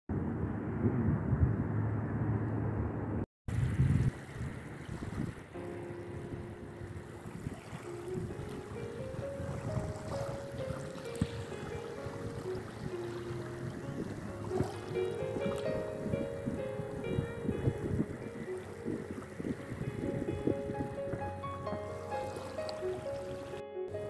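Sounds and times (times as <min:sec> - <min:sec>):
water noise: 0:00.1 - 0:24.0
wind buffeting microphone: 0:00.1 - 0:24.0
music of slow held notes: 0:05.6 - 0:24.0.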